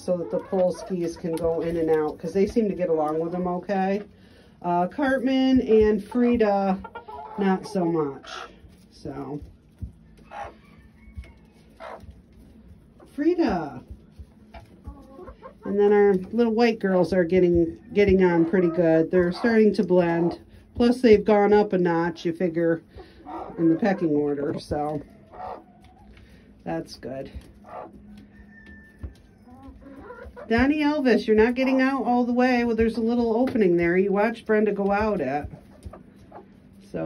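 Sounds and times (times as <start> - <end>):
chickens clucking: 0.0 - 37.0.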